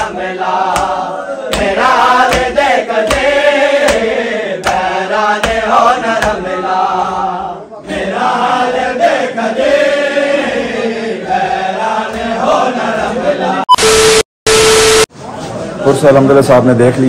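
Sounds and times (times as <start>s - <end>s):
rhythmic chest-beating slaps: 0.0s - 6.5s, 11.3s - 13.3s
men chanting in unison: 0.0s - 13.6s.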